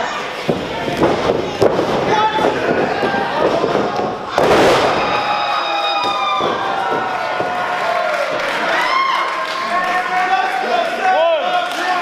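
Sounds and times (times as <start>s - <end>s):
crowd shouting and cheering: 0.0s - 12.0s
loud crash: 2.7s - 5.4s.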